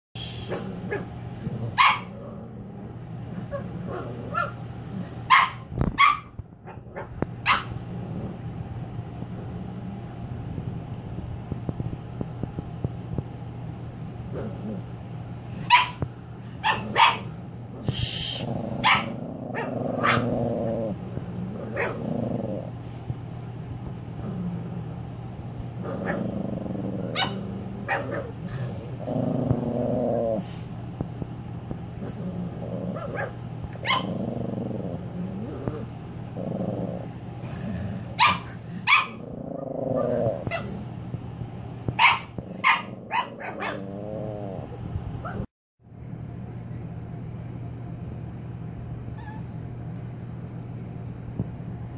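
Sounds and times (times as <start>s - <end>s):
puppy growling: 0.2s - 5.8s, 6.7s - 10.2s, 14.3s - 15.1s, 16.6s - 23.0s, 23.8s - 30.7s, 31.9s - 41.0s, 42.0s - 45.5s
steady low hum: 0.2s - 51.9s.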